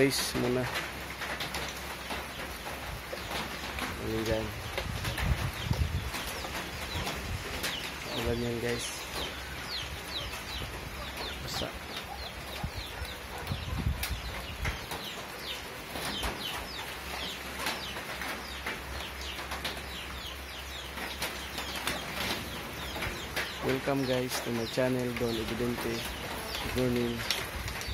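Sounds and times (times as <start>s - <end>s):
birds chirping: 0.0s - 27.9s.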